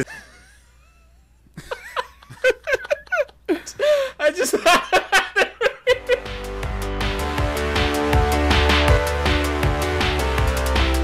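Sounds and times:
men laughing: 0:00.0 - 0:06.4.

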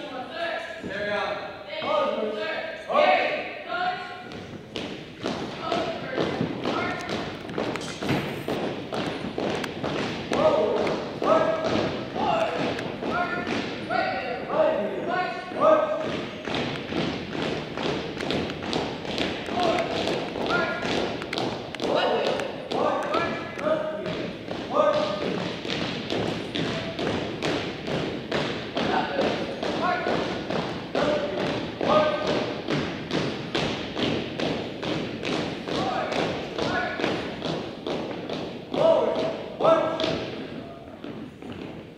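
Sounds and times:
marching footsteps on hardwood floor: 0:04.2 - 0:41.9.

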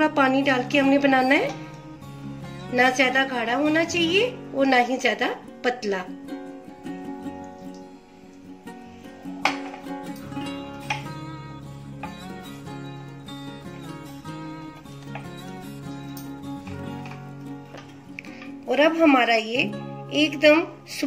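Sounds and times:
instrumental music: 0:00.0 - 0:21.0.

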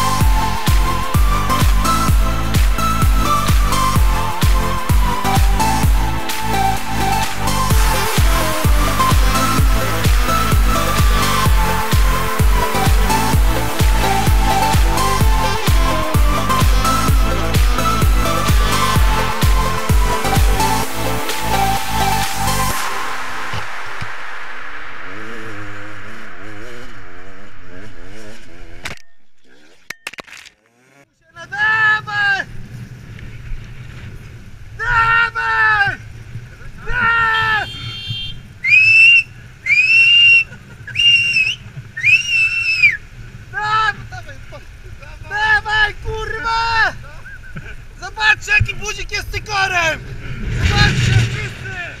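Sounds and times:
dirt bike engine revving: 0:00.0 - 0:23.6, 0:30.6 - 0:31.2
low rumble: 0:00.0 - 0:30.0, 0:48.6 - 0:52.0.

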